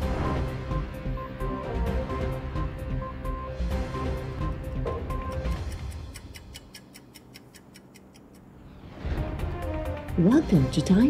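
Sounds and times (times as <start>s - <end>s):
news intro music: 0.0s - 5.7s
clock ticking: 5.2s - 8.6s.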